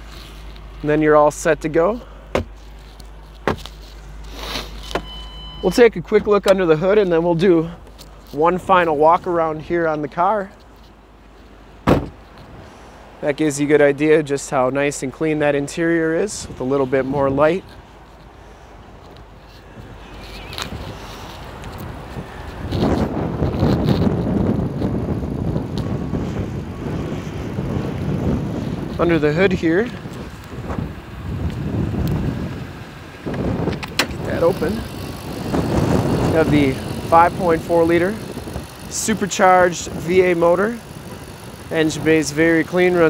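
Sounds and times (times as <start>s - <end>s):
low steady outdoor background: 0.0s - 43.0s
car door shutting: 2.3s - 2.6s, 4.6s - 6.6s, 11.8s - 12.4s, 33.3s - 34.2s
wind buffeting microphone: 19.7s - 43.0s.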